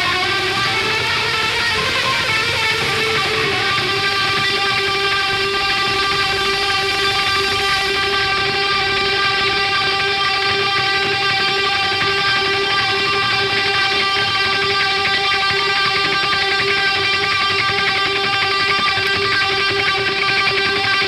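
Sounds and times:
distorted electric guitar note: 0.0 - 21.0.

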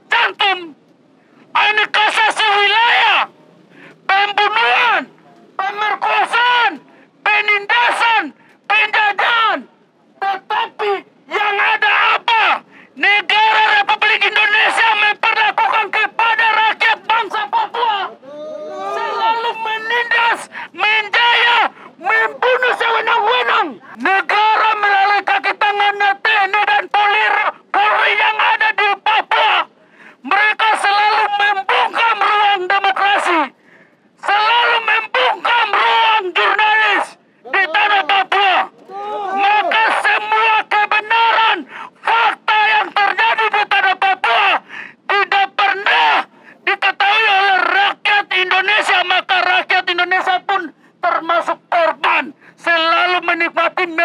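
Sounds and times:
man shouting through megaphone: 0.0 - 0.8, 1.5 - 33.6, 34.2 - 54.0
quieter overlapping voices: 0.0 - 54.0.

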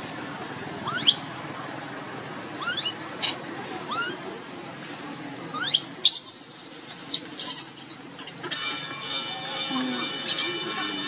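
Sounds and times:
baby monkey shrieking: 0.8 - 1.3, 2.6 - 4.2, 5.6 - 8.6.

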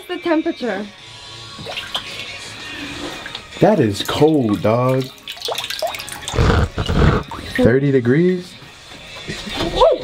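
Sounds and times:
water sloshing and splashing: 1.6 - 7.6.

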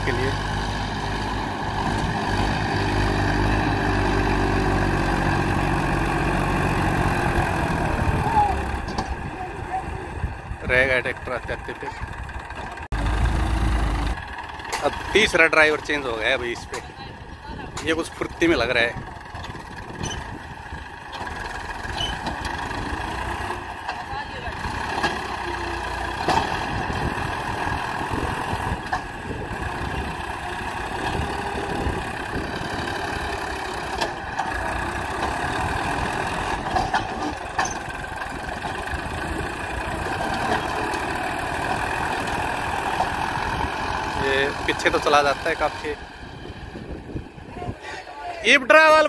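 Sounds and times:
diesel tractor engine straining: 0.0 - 49.0.

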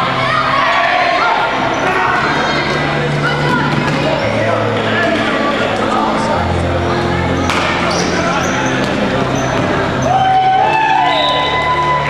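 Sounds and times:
people shouting: 0.0 - 2.7, 10.0 - 12.0
sharp ball impact: 7.4 - 8.0.

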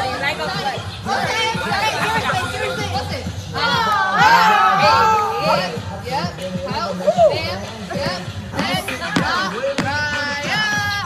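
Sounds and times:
girls shouting and chattering: 0.0 - 11.0.

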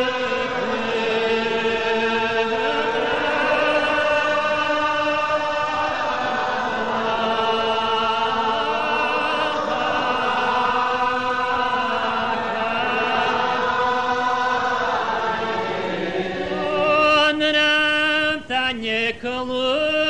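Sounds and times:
congregation singing unaccompanied: 0.0 - 20.0.

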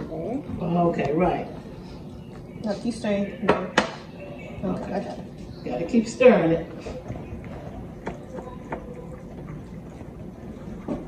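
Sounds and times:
stirring thick batter: 4.8 - 11.0.

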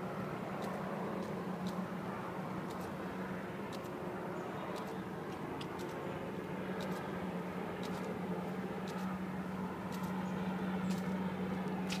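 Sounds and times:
low engine-like hum: 0.0 - 12.0
footsteps on pavement: 4.7 - 7.2, 7.8 - 12.0.

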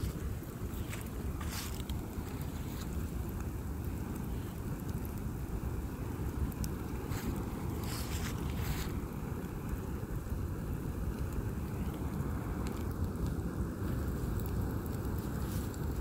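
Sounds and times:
fire crackling and hissing: 0.0 - 16.0
fire flames rushing: 0.0 - 16.0
wind on microphone: 0.0 - 16.0.

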